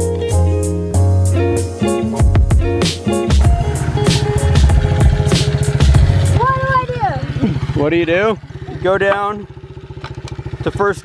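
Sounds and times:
guitar music: 0:00.0 - 0:07.6
pit bike engine idling: 0:03.3 - 0:11.0
voices: 0:06.3 - 0:11.0.

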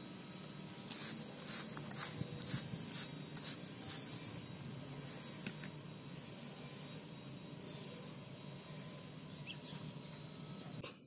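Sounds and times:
spray bottle squirting: 0:00.8 - 0:04.2.

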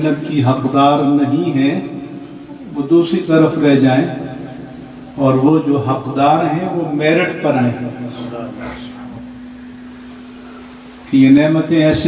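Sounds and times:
steady low hum: 0:00.0 - 0:12.0
man speaking: 0:02.7 - 0:04.2, 0:05.2 - 0:09.4.

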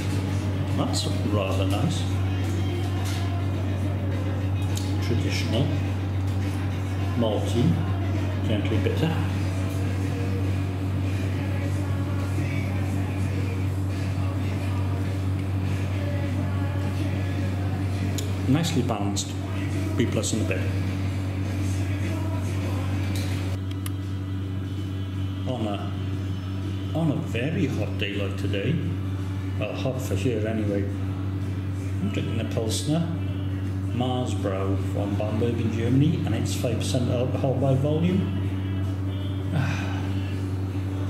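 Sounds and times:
music playing: 0:00.0 - 0:41.0
steady low hum: 0:00.0 - 0:41.0.

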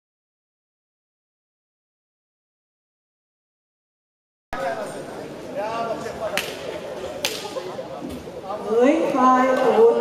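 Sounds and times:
background chatter: 0:04.6 - 0:10.0.

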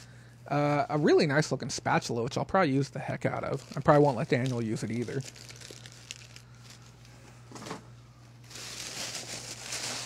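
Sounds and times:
packaging rustling and crinkling: 0:03.2 - 0:07.8, 0:08.4 - 0:10.0.

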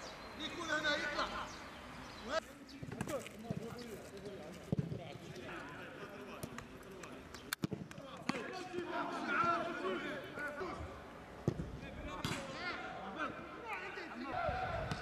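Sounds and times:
players calling out: 0:07.9 - 0:15.0.

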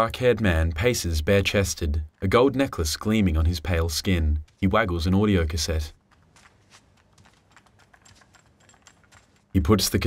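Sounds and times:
plastic cassette clicking and rattling: 0:06.0 - 0:09.6.

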